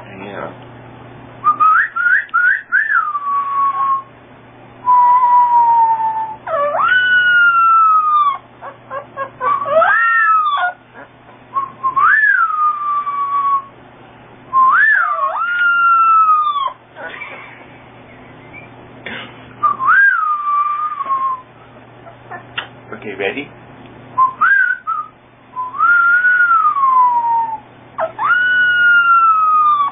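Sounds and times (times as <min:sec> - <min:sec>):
puppy howling: 0:01.6 - 0:04.1, 0:04.9 - 0:13.7, 0:14.5 - 0:17.3, 0:19.6 - 0:22.5, 0:24.2 - 0:29.9.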